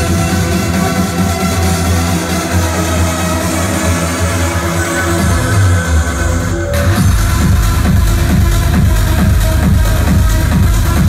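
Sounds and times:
loud trance music: 0:00.0 - 0:11.0.

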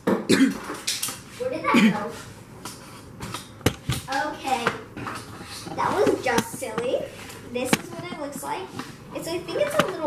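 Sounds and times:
person speaking: 0:04.0 - 0:10.0.

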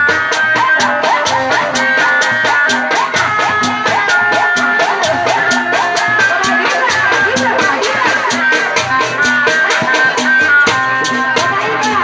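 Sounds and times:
drums: 0:00.0 - 0:12.0
fast percussion rattle: 0:00.0 - 0:12.0
high wavering melody: 0:00.0 - 0:12.0.

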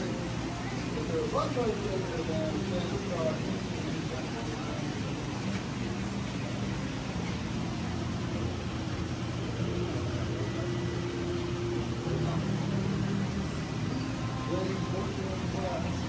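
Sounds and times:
pump hum: 0:00.0 - 0:16.0.

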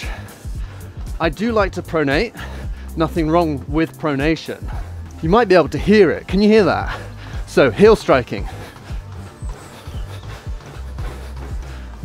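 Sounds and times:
background music with steady bass: 0:00.0 - 0:12.0.

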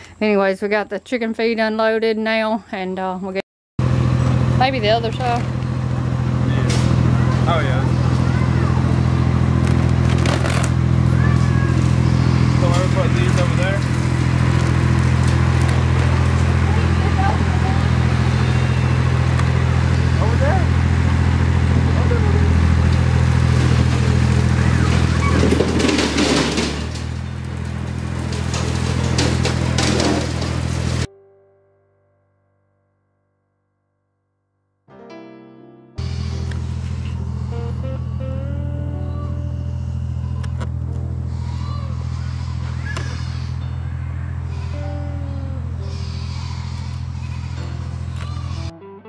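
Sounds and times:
vehicle engine idling: 0:03.8 - 0:31.1, 0:36.0 - 0:48.7
feed bags knocking and rustling: 0:23.6 - 0:31.1.

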